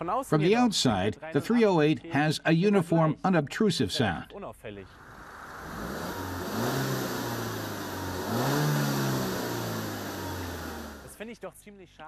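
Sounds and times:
car engine exhaust revving: 0:04.9 - 0:11.2.

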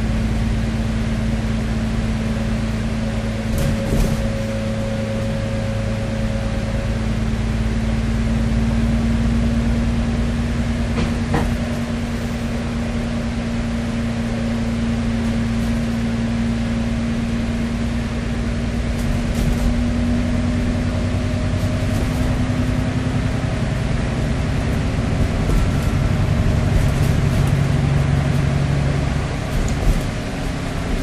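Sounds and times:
bus engine droning: 0:00.0 - 0:31.0.

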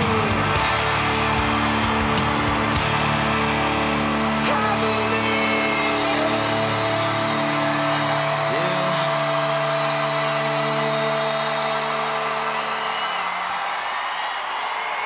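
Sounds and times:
crowd cheering: 0:00.0 - 0:15.0
crowd whistles: 0:00.0 - 0:15.0.

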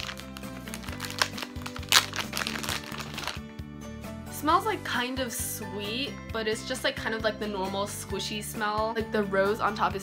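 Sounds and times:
plastic packaging crinkling: 0:00.0 - 0:03.5
background music: 0:00.0 - 0:10.0.

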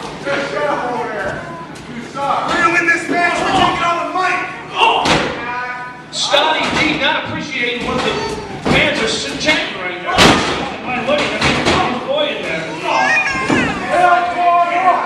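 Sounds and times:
voices calling out: 0:00.0 - 0:15.0.

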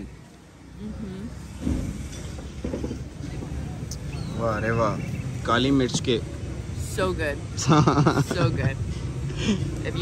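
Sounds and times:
street rumble: 0:00.0 - 0:10.0.

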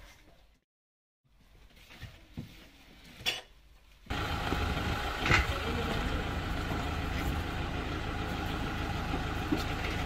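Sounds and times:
vehicle engine idling: 0:04.1 - 0:10.0.

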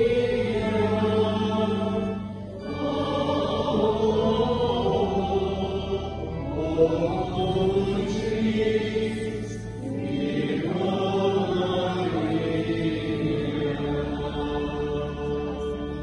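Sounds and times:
voices singing a chanted hymn: 0:00.0 - 0:16.0.

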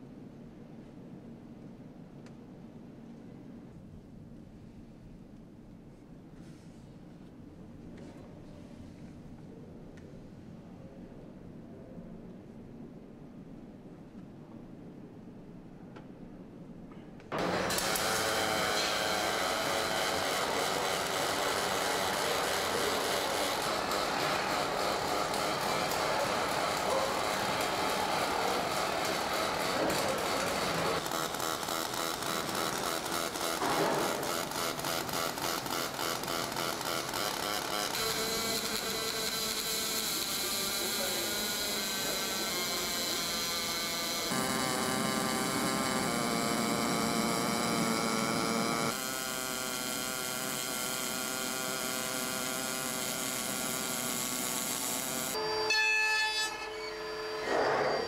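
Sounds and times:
welding and machinery: 0:17.3 - 0:58.0.

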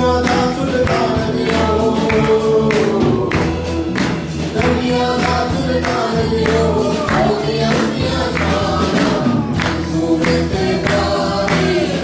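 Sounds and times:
instrumental backing: 0:00.0 - 0:12.0
percussion hits: 0:00.0 - 0:12.0
voices singing together: 0:00.0 - 0:12.0.

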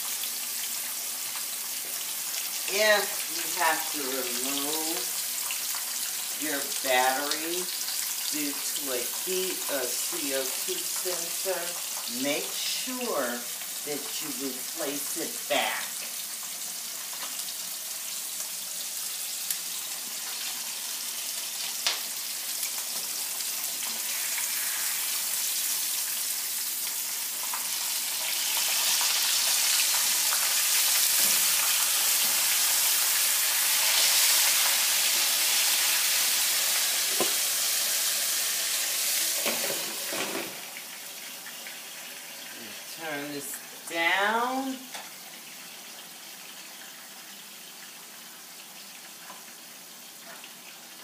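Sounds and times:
fish sizzling in oil: 0:00.0 - 0:51.0.

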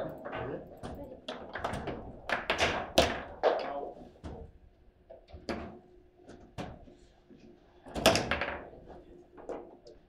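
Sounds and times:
table football knocks and clacks: 0:00.9 - 0:03.7, 0:07.9 - 0:08.8.

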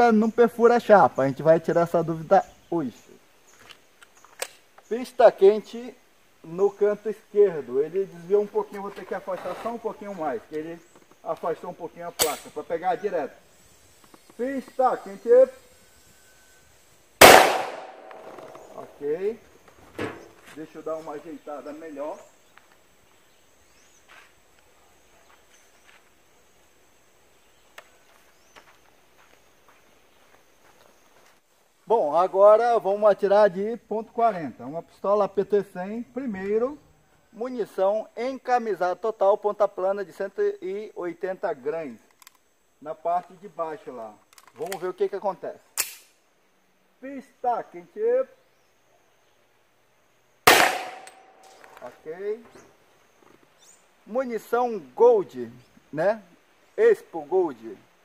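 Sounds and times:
faint outdoor ambience: 0:00.0 - 0:58.0
pistol shot: 0:17.2 - 0:18.8, 0:50.5 - 0:51.6
footsteps on dirt: 0:19.6 - 0:21.2, 0:23.8 - 0:26.2, 0:27.6 - 0:31.5.

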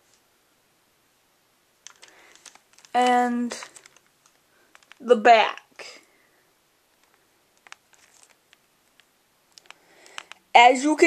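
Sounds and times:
faint clicks and rustles: 0:01.8 - 0:06.2, 0:06.8 - 0:10.6.

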